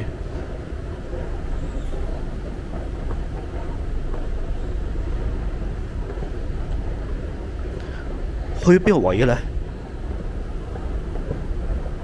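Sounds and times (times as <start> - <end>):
escalator low rumble: 0.0 - 12.0.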